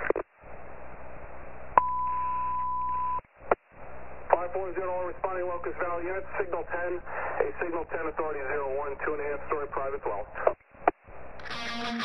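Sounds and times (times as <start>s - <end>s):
radio squelch click: 0.0s - 0.3s
radio static hiss: 0.0s - 1.8s, 3.4s - 12.0s.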